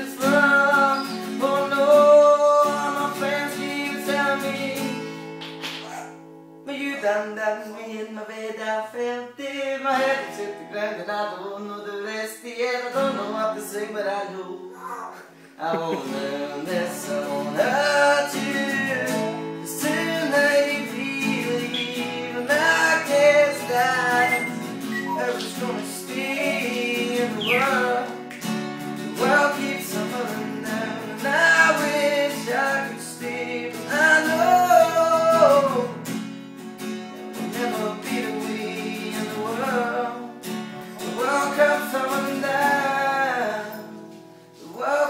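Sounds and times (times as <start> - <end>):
man singing: 0.0 - 5.3, 6.6 - 28.4, 29.0 - 36.2, 37.3 - 45.0
strummed acoustic guitar: 0.0 - 45.0.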